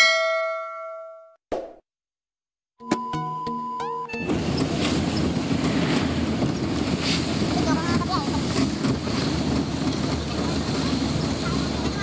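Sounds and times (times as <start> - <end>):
road and wind noise in vehicle: 4.1 - 12.0.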